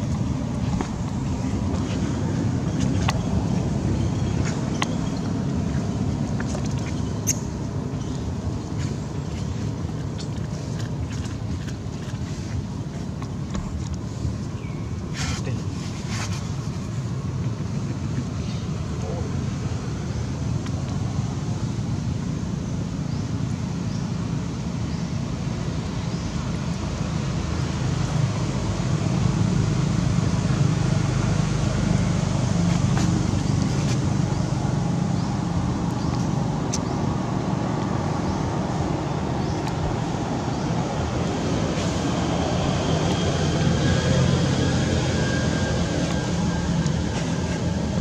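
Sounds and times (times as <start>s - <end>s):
wind rumbling on microphone: 0.0s - 48.0s.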